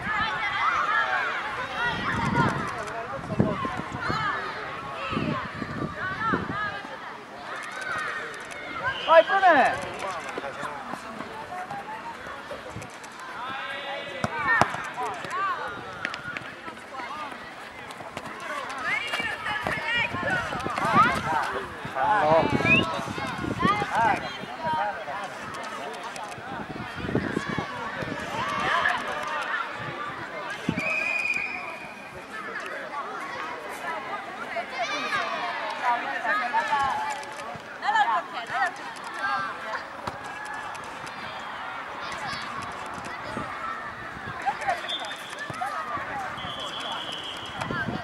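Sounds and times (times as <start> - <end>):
girls calling and shouting: 0.0 - 10.0, 18.2 - 25.4, 33.0 - 48.0
players running on artificial turf: 6.0 - 31.9, 34.6 - 48.0.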